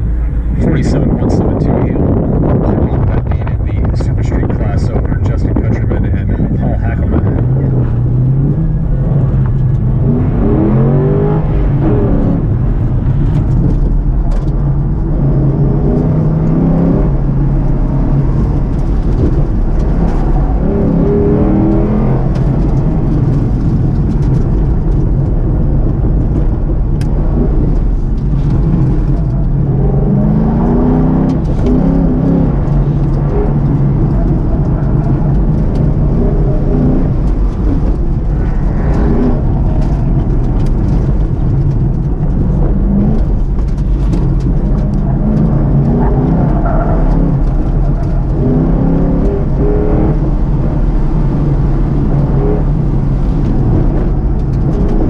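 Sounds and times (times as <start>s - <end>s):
car engine revving: 0.0s - 55.0s
road noise: 0.0s - 55.0s.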